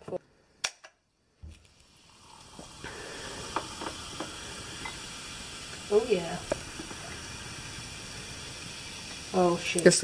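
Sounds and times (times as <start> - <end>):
soda fizzing while poured: 1.5 - 10.0.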